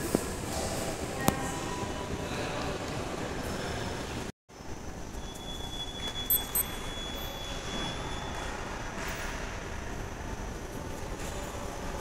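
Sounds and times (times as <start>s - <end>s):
faint high whistle: 5.1s - 8.6s
short sharp high beeps: 5.2s - 8.4s.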